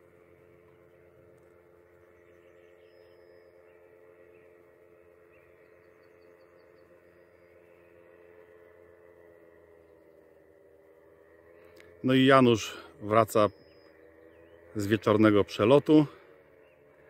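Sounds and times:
distant paramotor drone: 0.0s - 17.0s.

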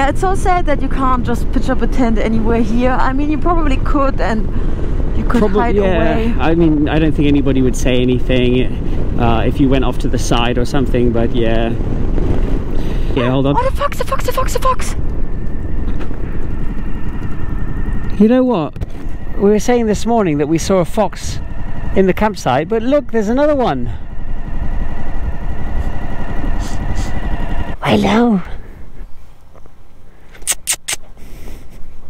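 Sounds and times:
wind noise on microphone: 0.0s - 19.9s
motorcycle engine rumble: 0.0s - 30.4s
person sniffing: 30.3s - 31.9s.

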